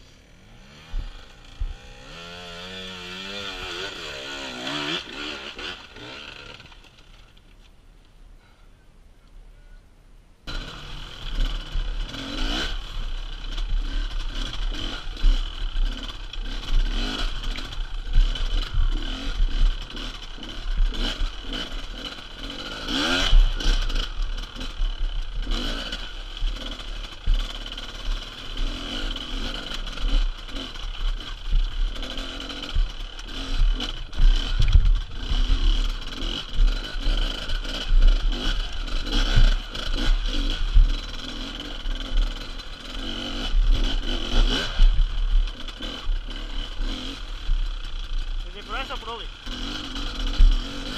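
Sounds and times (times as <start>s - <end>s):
dirt bike engine revving: 0.0s - 7.3s, 10.4s - 50.9s.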